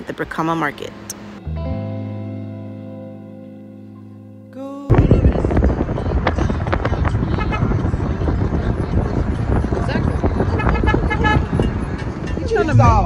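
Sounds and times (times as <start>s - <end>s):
car horn toots: 7.3s - 7.9s, 10.4s - 12.4s.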